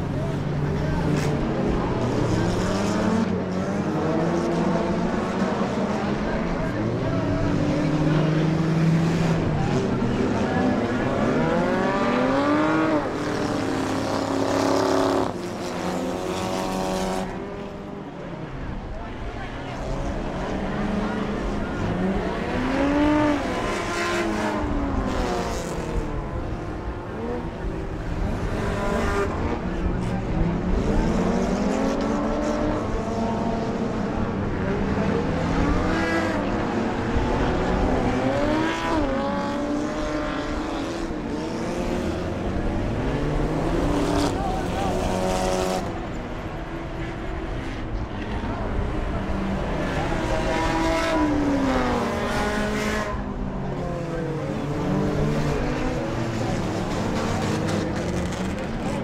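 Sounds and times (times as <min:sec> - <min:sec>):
race car engines passing: 0:00.0 - 0:59.0.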